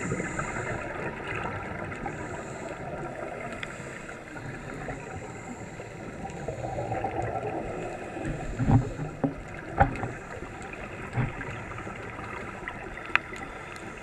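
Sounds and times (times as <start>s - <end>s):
underwater water rush: 0.0s - 14.0s.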